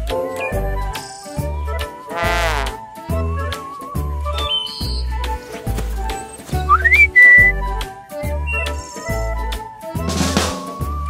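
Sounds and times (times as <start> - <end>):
bouncy children's music: 0.0 - 11.0
rising cartoon whistle: 3.4 - 5.1, 6.7 - 7.7.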